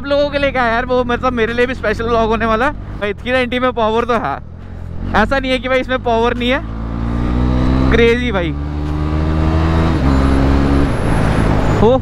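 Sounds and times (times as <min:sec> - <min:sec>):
wind and road rush: 0:00.0 - 0:12.0
motorcycle engine at speed: 0:04.5 - 0:11.0.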